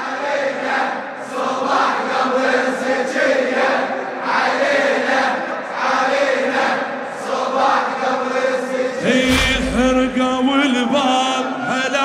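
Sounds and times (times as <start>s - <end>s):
low drone: 9.0s - 10.6s
man chanting: 9.0s - 12.0s
deep bass boom: 9.1s - 10.8s.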